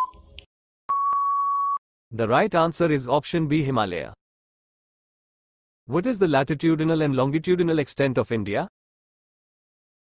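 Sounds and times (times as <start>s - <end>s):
long steady beep: 0.9s - 1.8s.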